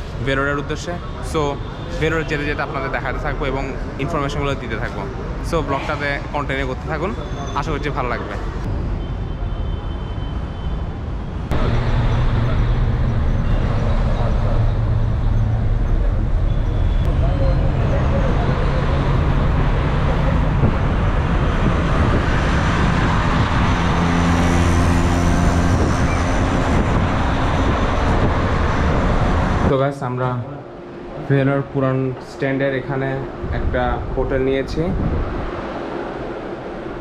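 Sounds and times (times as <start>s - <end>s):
bus engine and road noise: 0.0s - 37.0s.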